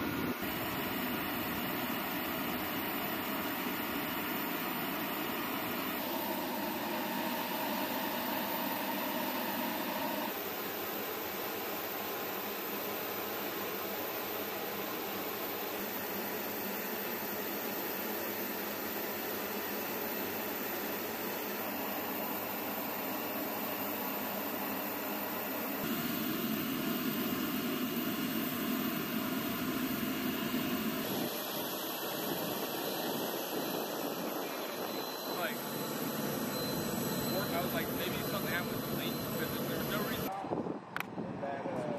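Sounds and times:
aircraft engine roar: 0:00.0 - 0:41.9
faint engine whine: 0:00.0 - 0:41.9.

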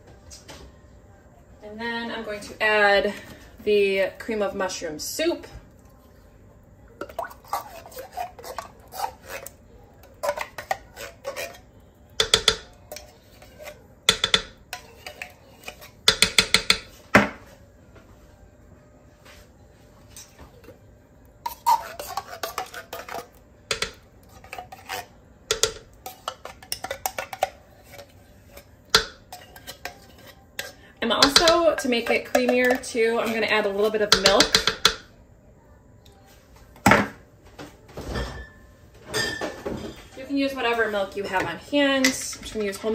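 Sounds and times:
spatula scraping tin can: 0:07.1 - 0:16.2, 0:21.4 - 0:33.5
spatula knocks: 0:12.2 - 0:12.7.

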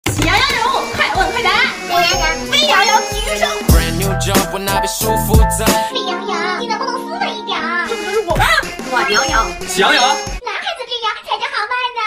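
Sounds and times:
child talking: 0:00.2 - 0:03.7, 0:05.9 - 0:09.6, 0:10.4 - 0:12.0
background music: 0:00.3 - 0:10.4.

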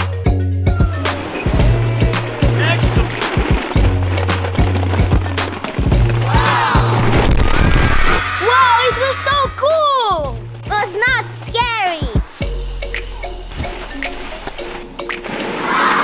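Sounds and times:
background music with bass line: 0:00.0 - 0:15.6
children shouting excitedly: 0:06.3 - 0:07.0, 0:08.2 - 0:12.2, 0:15.6 - 0:16.0.

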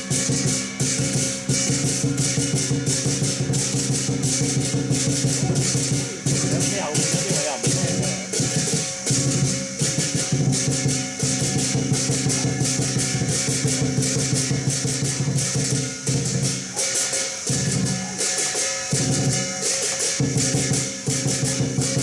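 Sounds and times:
cymbals ringing: 0:00.0 - 0:22.0
drum fast beat: 0:00.0 - 0:22.0
gong ringing: 0:00.0 - 0:22.0.

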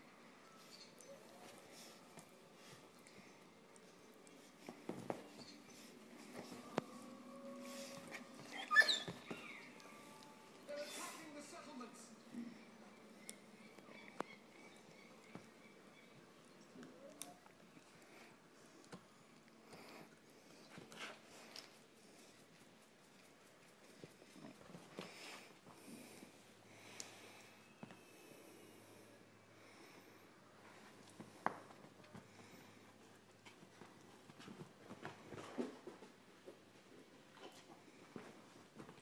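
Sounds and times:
dog whining: 0:07.4 - 0:09.7
dog yip: 0:08.5 - 0:09.2.

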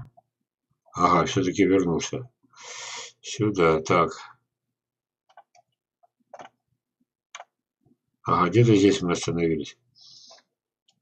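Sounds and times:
computer mouse clicks: 0:05.2 - 0:06.6, 0:07.3 - 0:07.6.

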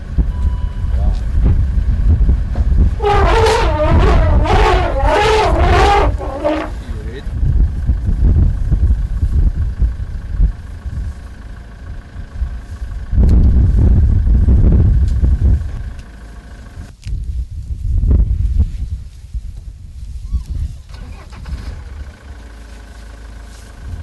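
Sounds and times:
elephant low rumble: 0:00.0 - 0:24.0
elephant trumpeting: 0:03.0 - 0:06.9.

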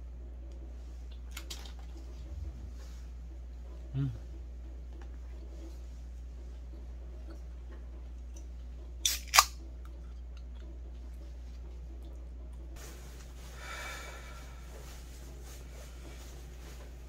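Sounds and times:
drink can pull tab snapping: 0:09.0 - 0:09.6.

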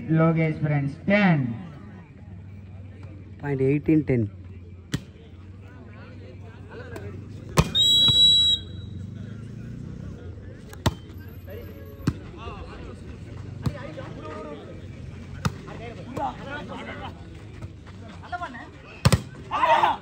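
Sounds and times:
referee's whistle: 0:07.6 - 0:09.0.

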